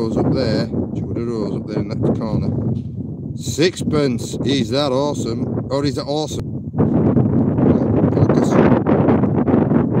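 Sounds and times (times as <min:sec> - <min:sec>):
gusty wind buffeting microphone: 0:00.0 - 0:10.0.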